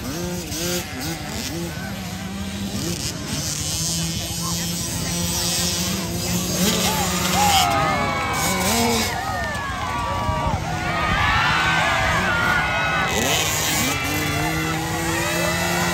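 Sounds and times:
motocross bike engines buzzing: 0:00.0 - 0:15.9.

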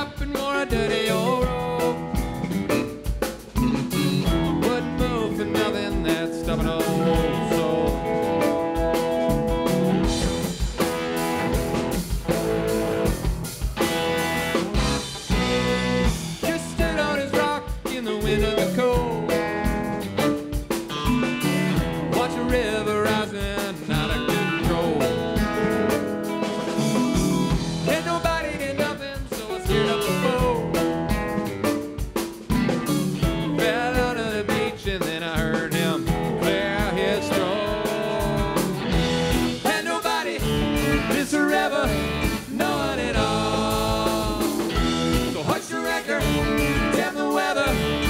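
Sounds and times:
electric bass: 0:00.0 - 0:39.8, 0:40.4 - 0:48.0
bending melodic lead line: 0:00.0 - 0:48.0
drum kit: 0:00.0 - 0:48.0
electric guitars: 0:00.0 - 0:48.0.

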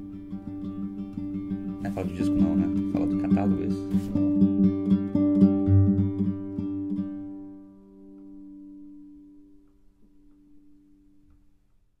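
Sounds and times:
acoustic guitar note ringing: 0:00.0 - 0:11.1.

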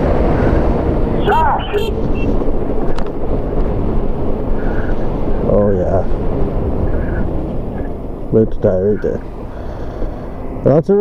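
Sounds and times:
wind buffeting microphone: 0:00.0 - 0:10.6
rumbling road noise: 0:00.0 - 0:11.0.

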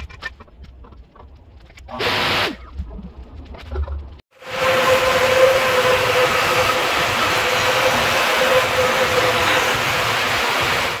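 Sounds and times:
band saw whirring: 0:04.4 - 0:11.0.

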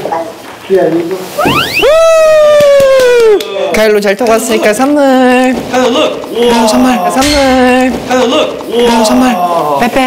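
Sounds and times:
cartoon swoop and falling whistle: 0:01.4 - 0:03.5.

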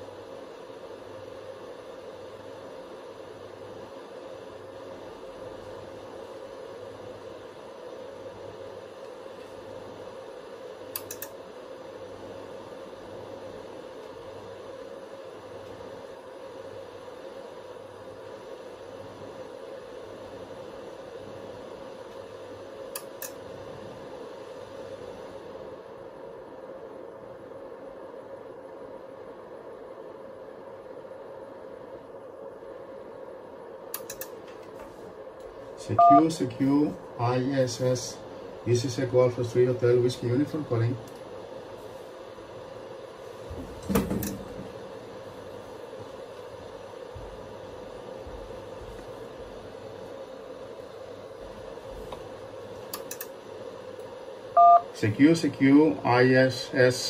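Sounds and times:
radio receiver hiss and hum: 0:00.0 - 0:57.0
sharp clicks: 0:10.9 - 0:11.4, 0:33.9 - 0:34.4, 0:52.9 - 0:53.3.

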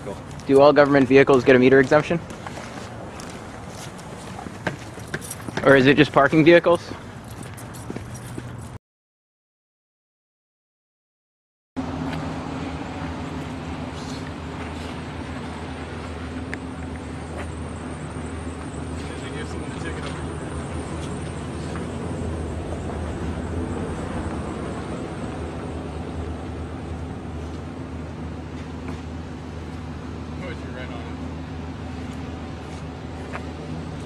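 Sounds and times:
road noise: 0:00.0 - 0:08.8, 0:11.8 - 0:34.0
vehicle engines humming: 0:00.0 - 0:08.8, 0:11.8 - 0:34.0.

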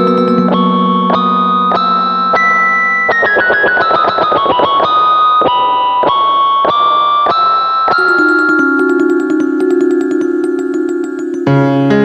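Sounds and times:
keyboard melody: 0:00.0 - 0:12.0.

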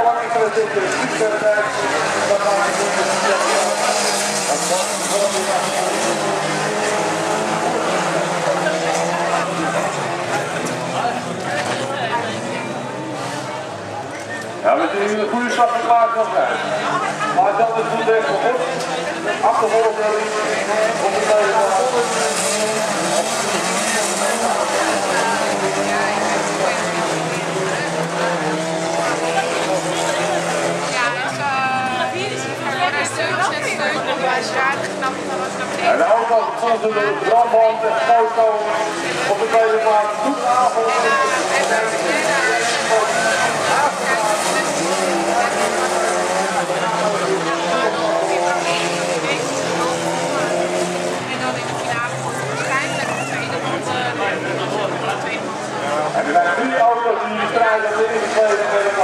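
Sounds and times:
racing car engines revving: 0:00.0 - 0:59.0.

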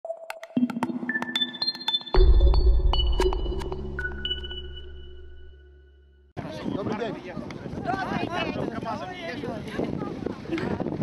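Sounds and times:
sharp electronic clicks: 0:00.3 - 0:05.6
high pinging tones: 0:00.6 - 0:06.4.

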